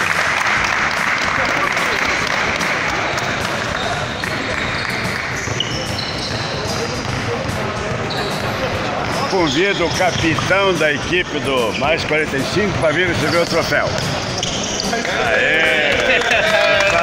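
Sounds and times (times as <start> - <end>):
people clapping: 0.0 - 5.6, 15.1 - 17.0.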